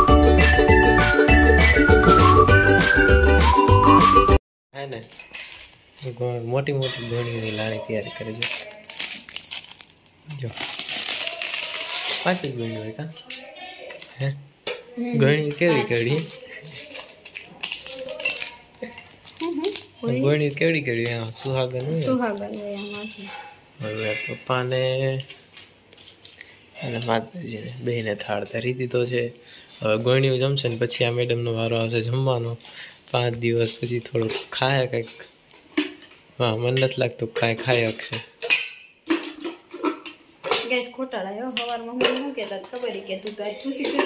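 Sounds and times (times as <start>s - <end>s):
steel bowls and plates clinking: 5.0s - 8.6s, 33.6s - 40.8s, 41.5s - 44.0s
person talking: 15.0s - 16.0s
person speaking: 15.0s - 16.7s
metal plates clinking: 35.1s - 40.8s.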